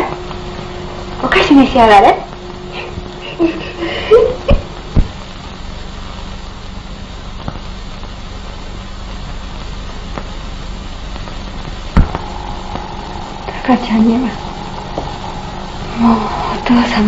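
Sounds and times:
faint pops and crackle: 0:00.0 - 0:17.0
film soundtrack hiss: 0:00.0 - 0:17.0
low hum: 0:00.0 - 0:17.0.

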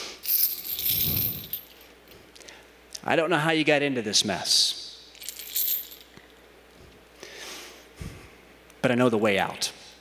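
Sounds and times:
chain links rattling: 0:00.2 - 0:01.9, 0:05.1 - 0:06.3.

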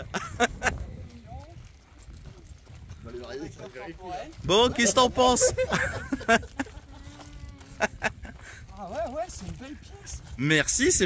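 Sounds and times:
people talking in background: 0:00.6 - 0:11.0.

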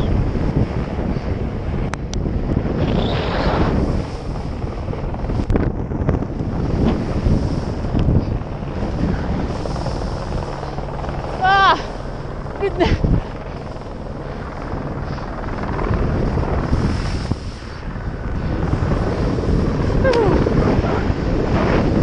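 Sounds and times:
wind rushing over microphone: 0:00.0 - 0:22.0
snowboard scraping over snow: 0:02.6 - 0:10.4, 0:15.9 - 0:22.0
person crying out: 0:11.4 - 0:11.9, 0:12.6 - 0:13.0, 0:20.0 - 0:20.5.

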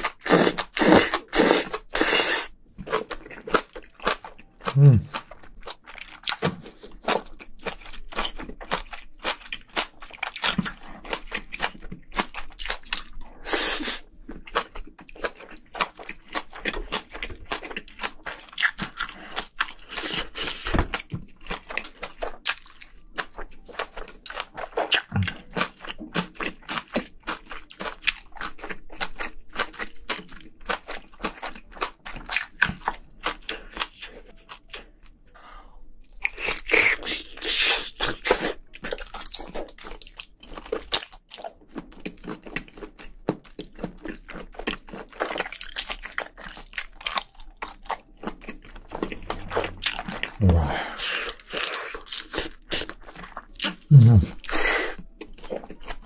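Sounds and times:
close chewing with crunches: 0:00.0 - 0:35.2, 0:36.0 - 0:56.0.

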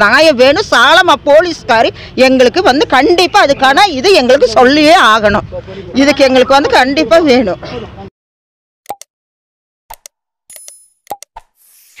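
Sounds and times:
short pops and clicks: 0:08.9 - 0:09.1, 0:09.9 - 0:11.6.

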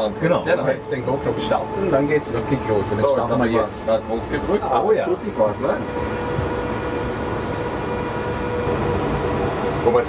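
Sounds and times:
electric car hum and whine: 0:00.0 - 0:10.0.

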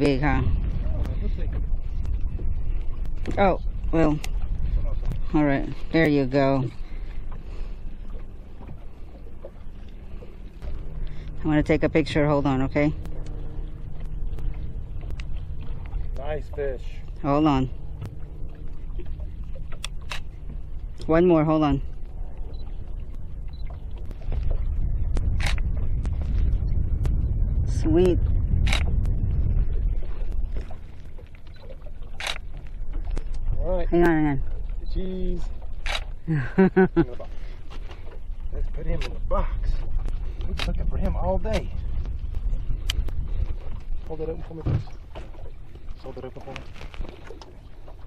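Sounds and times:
steady low rumble: 0:00.0 - 0:48.0.

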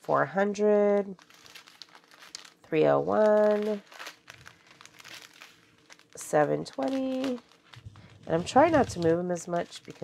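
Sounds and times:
plastic bags crinkling: 0:00.6 - 0:10.0.

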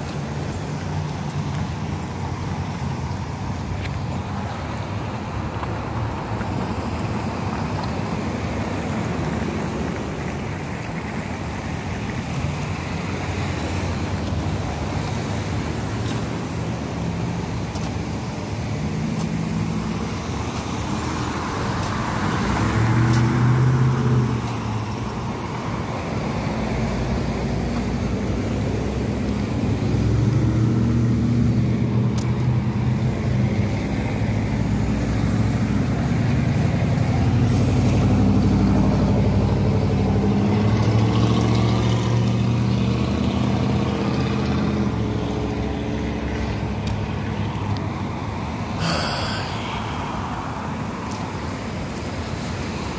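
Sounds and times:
cars driving past: 0:00.0 - 0:52.9.

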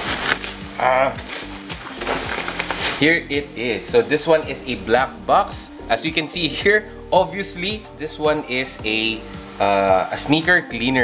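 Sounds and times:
sharp crackle: 0:00.0 - 0:03.2
bubble wrap crinkling: 0:00.0 - 0:03.4
background music: 0:00.0 - 0:11.0.

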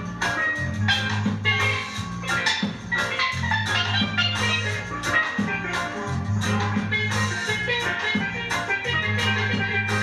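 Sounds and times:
bass line: 0:00.0 - 0:10.0
drum kit: 0:00.0 - 0:10.0
steel pan notes: 0:00.0 - 0:10.0.

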